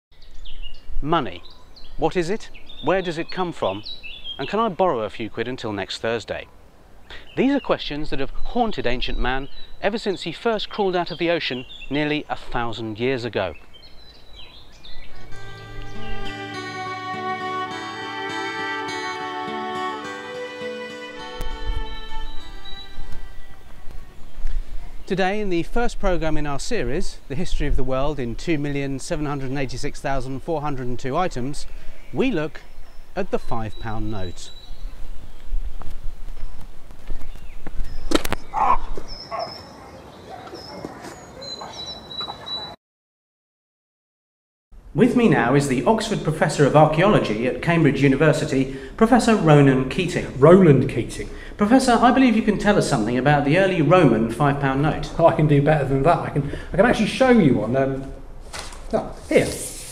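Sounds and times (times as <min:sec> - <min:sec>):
birds chirping: 0:00.1 - 0:25.6, 0:28.1 - 0:42.8
music with held notes: 0:15.3 - 0:24.2
high whistled bird calls: 0:21.6 - 0:24.4, 0:37.2 - 0:42.8
sharp crack: 0:38.1 - 0:38.4.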